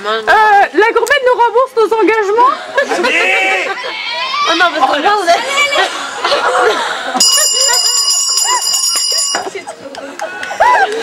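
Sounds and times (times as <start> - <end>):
voices talking: 1.2 - 11.0
bell ringing: 7.2 - 9.7.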